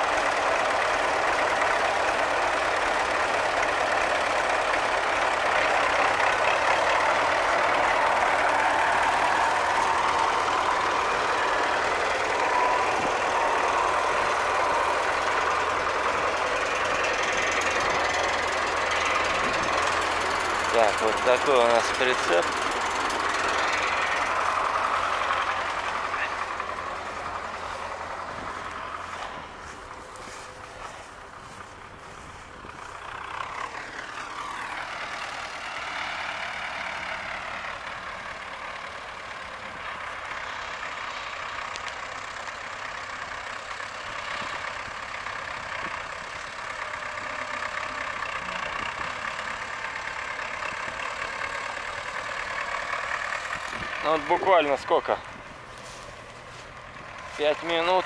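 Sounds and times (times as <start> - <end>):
tractor diesel engine revving: 0.0 - 58.0.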